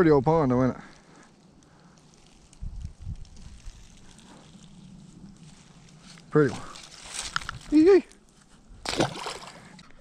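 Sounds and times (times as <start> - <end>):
faint crackling rustle: 0.2 - 8.8.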